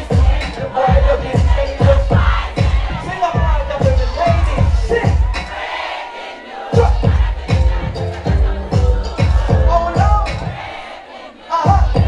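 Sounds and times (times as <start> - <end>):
bass-heavy beat: 0.0 - 5.7, 6.7 - 10.8, 11.6 - 12.0
crowd noise: 0.0 - 12.0.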